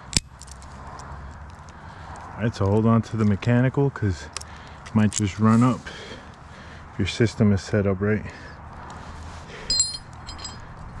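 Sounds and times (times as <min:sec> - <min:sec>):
metal climbing hardware clinking: 0:09.6 - 0:10.8.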